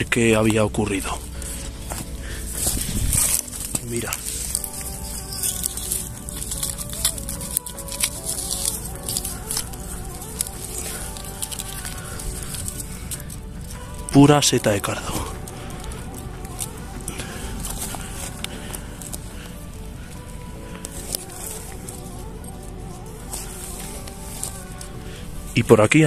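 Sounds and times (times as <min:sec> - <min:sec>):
crackling of dry grass and gravel: 0:00.0 - 0:26.0
soft background music: 0:00.0 - 0:26.0.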